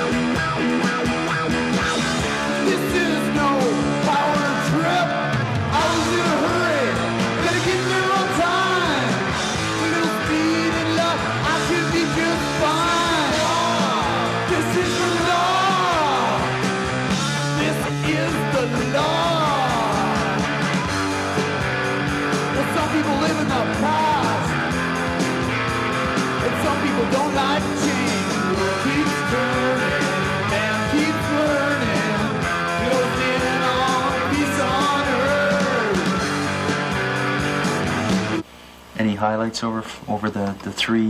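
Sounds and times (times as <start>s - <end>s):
loud rock music with guitar: 0.0s - 38.5s.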